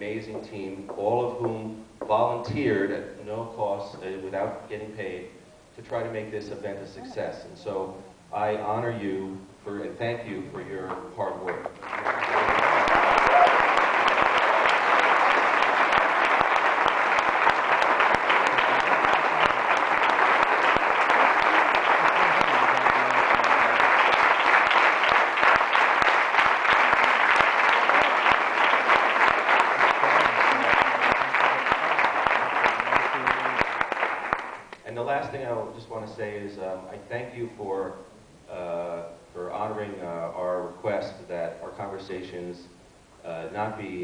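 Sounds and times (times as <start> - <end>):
audience applauding: 11.8 - 34.8.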